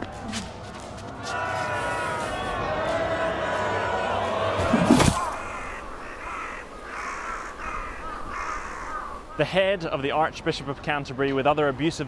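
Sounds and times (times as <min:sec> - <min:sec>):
crows cawing: 0:05.0 - 0:09.5.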